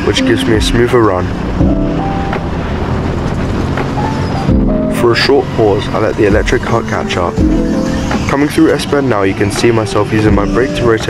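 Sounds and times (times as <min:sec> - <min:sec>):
wind buffeting microphone: 0:00.0 - 0:06.8
go-kart engine at speed: 0:00.0 - 0:11.0.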